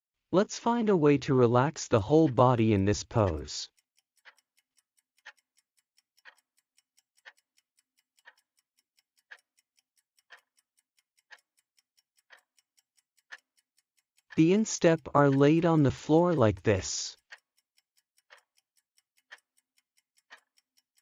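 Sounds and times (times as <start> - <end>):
timer ticking: 0.4 - 21.0.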